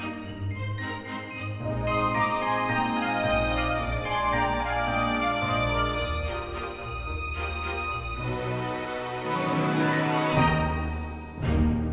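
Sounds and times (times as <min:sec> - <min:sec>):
jingle bells shaken: 0:00.0 - 0:11.4
instrumental background music: 0:00.0 - 0:11.9.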